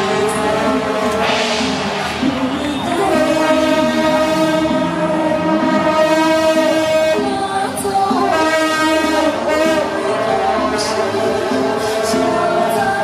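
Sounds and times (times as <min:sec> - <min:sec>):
wind instrument long bright note: 0:00.0 - 0:07.4, 0:08.2 - 0:13.0
lower melody: 0:00.0 - 0:13.0.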